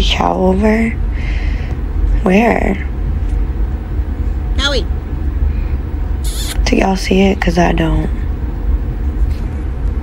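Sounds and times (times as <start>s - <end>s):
person calling high-pitched: 6.2s - 6.6s.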